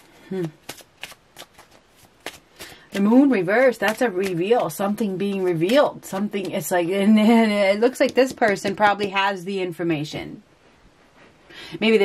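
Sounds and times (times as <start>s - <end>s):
cards clicking and snapping: 0.4s - 4.8s.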